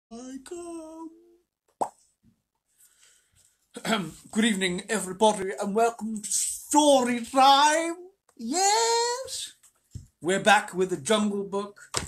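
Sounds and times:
man vocalising held notes: 0:00.1 - 0:01.4
lip pop: 0:01.7 - 0:02.0.

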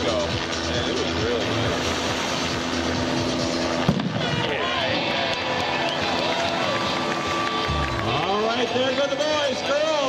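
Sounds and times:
music over loudspeakers: 0:00.0 - 0:05.5
crowd hum: 0:00.6 - 0:09.8
starting gun bang: 0:03.8 - 0:04.3.

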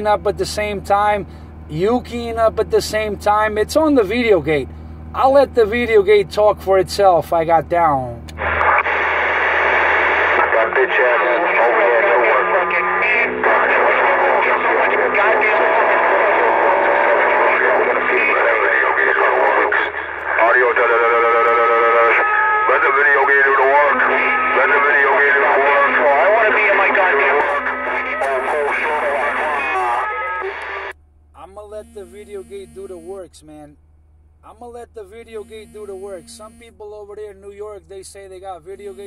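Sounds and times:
radio music or tones: 0:08.4 - 0:33.3, 0:38.6 - 0:39.0
distorted radio voice: 0:10.3 - 0:33.6, 0:34.6 - 0:39.0.

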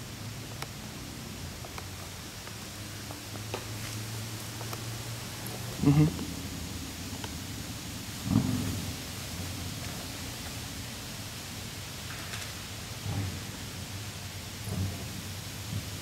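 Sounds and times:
wind rumble on microphone: 0:06.2 - 0:12.0.

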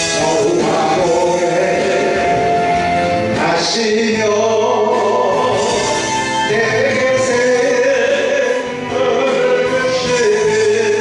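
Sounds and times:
man singing into microphone: 0:00.0 - 0:11.0
musical accompaniment: 0:00.0 - 0:11.0.

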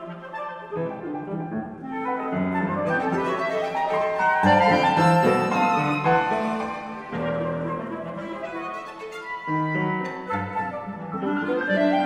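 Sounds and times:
chamber ensemble playing classical music: 0:00.0 - 0:12.0.

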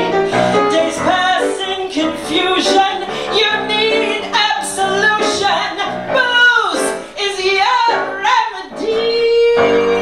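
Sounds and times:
piano accompaniment: 0:00.0 - 0:10.0
woman singing into a microphone: 0:00.0 - 0:10.0.

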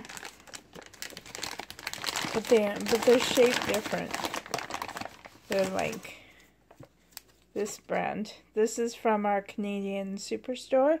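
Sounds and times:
foil pouch crinkling: 0:00.0 - 0:06.2.

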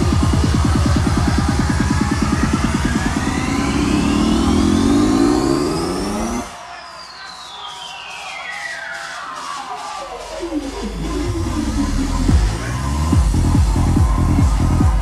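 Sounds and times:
psytrance over sound system: 0:00.0 - 0:15.0.

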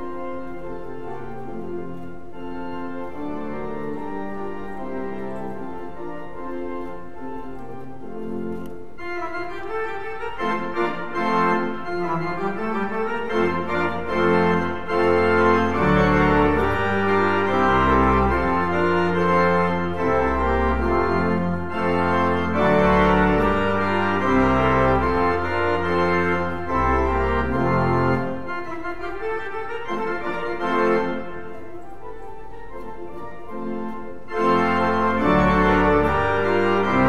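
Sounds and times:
pipe organ chords: 0:00.0 - 0:37.0
deep organ pedal bass: 0:10.2 - 0:29.0, 0:34.3 - 0:37.0.

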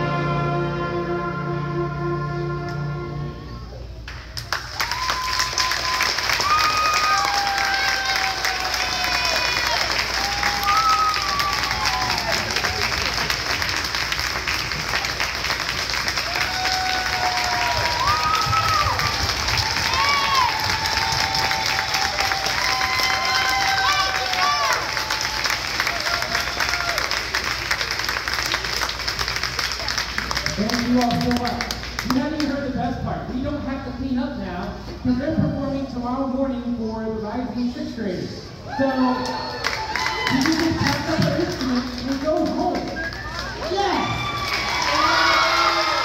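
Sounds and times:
choir and orchestra chord: 0:00.0 - 0:03.8
audience applause: 0:04.1 - 0:32.1, 0:39.1 - 0:46.0
audience cheering and whooping: 0:04.5 - 0:13.7, 0:14.4 - 0:27.5, 0:38.6 - 0:40.9, 0:43.0 - 0:46.0.

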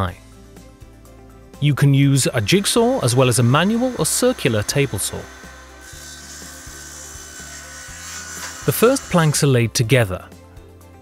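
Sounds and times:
saw cutting wood plank: 0:02.2 - 0:09.6.

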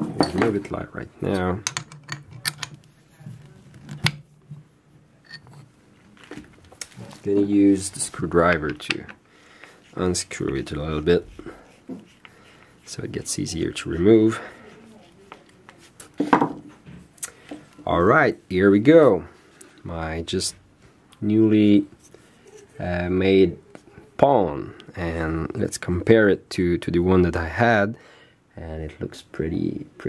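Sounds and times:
faint low hum: 0:00.0 - 0:30.0.

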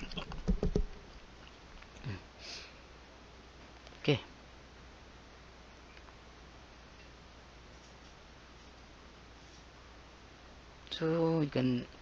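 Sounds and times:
paintbrush tapping: 0:00.2 - 0:01.0.

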